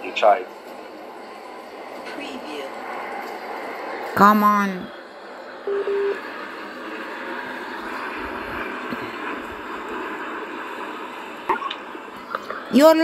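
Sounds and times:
low electronic beep: 0:05.7 - 0:06.2.

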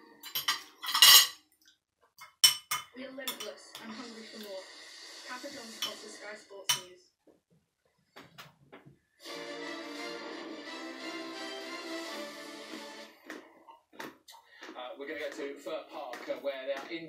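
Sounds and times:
cutlery clinking on ceramic plates: 0:00.2 - 0:01.4, 0:02.2 - 0:03.9, 0:05.8 - 0:06.0, 0:06.7 - 0:06.9.

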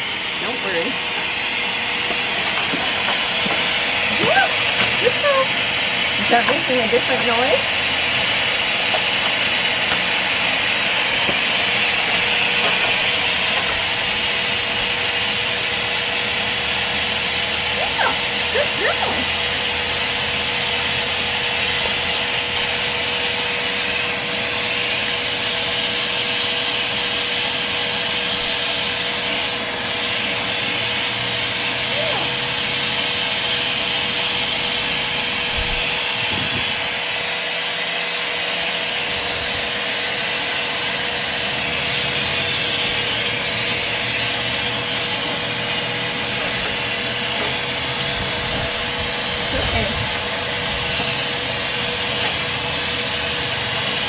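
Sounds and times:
motor hum: 0:00.0 - 0:54.0
pet dryer blower rushing hiss: 0:00.0 - 0:54.0.

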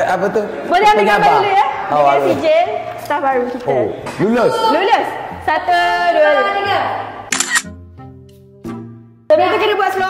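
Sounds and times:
camera shutter sound effect: 0:07.3 - 0:07.8.

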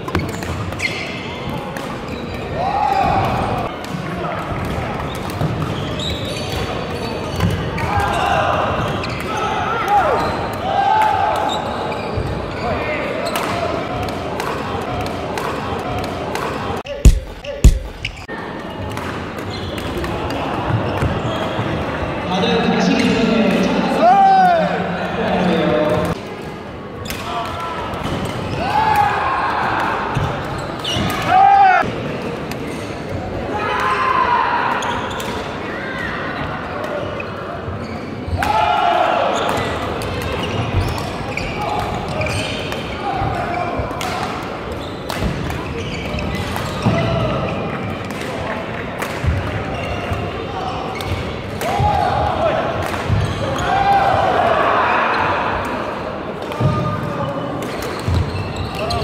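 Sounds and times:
sneakers squeaking on court floor: 0:00.0 - 0:02.5, 0:04.6 - 0:09.5, 0:10.1 - 0:10.5, 0:11.5 - 0:13.4, 0:16.9 - 0:18.3, 0:37.1 - 0:38.4, 0:39.4 - 0:43.3, 0:44.7 - 0:45.0, 0:45.6 - 0:47.8, 0:53.1 - 0:53.7, 0:57.7 - 0:59.0
rackets striking shuttlecock: 0:16.9 - 0:18.3.

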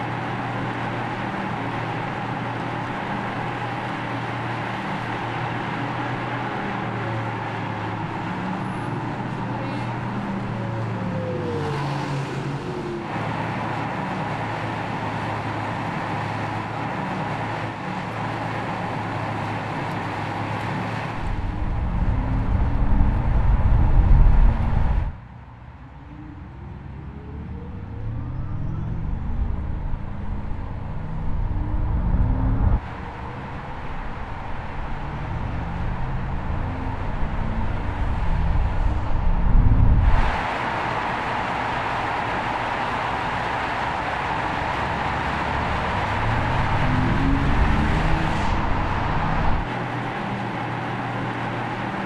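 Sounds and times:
car engine low rumble accelerating: 0:00.0 - 0:52.0
road and wind noise: 0:00.0 - 0:52.0
rising tones: 0:26.0 - 0:49.7.

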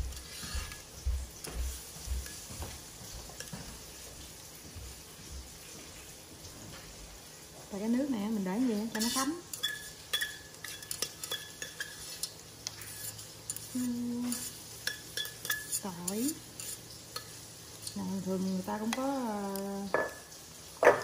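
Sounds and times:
chopsticks scraping metal bowl: 0:00.0 - 0:00.8, 0:08.8 - 0:18.0
person humming: 0:13.8 - 0:14.3.

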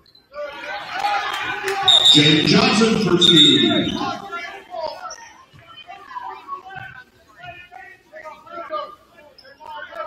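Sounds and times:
indistinct voices: 0:01.9 - 0:04.6.

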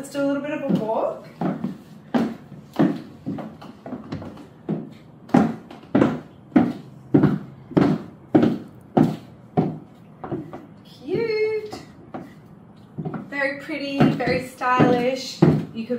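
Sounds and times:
high heels clacking on wooden floor: 0:00.0 - 0:15.9.

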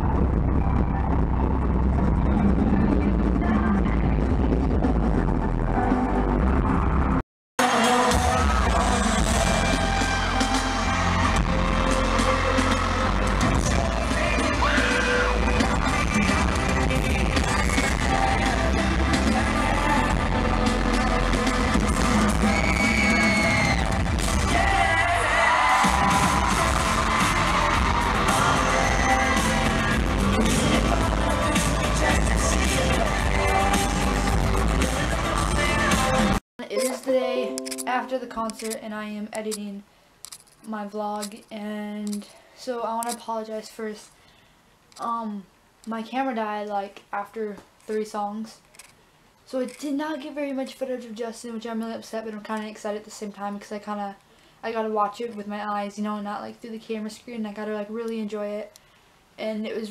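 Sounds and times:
crowd yelling: 0:07.6 - 0:18.5, 0:19.2 - 0:36.4
man singing lead vocal: 0:07.6 - 0:37.0
live amplified pop music: 0:07.6 - 0:38.7
heavy bass beat: 0:08.1 - 0:25.2, 0:25.8 - 0:36.4.

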